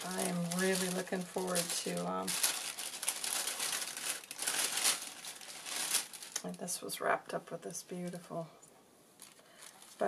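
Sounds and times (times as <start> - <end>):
tissue paper crinkling: 0.0 - 6.7, 9.2 - 10.0.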